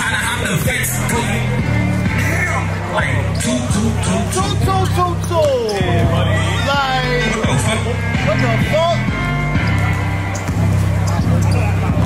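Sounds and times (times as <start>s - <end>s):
rapped vocal: 0.0s - 9.2s
deep bass line: 0.0s - 12.0s.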